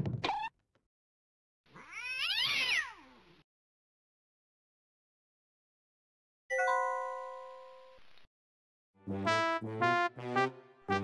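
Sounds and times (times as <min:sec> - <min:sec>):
cartoon cat meow: 0:01.7 - 0:03.2.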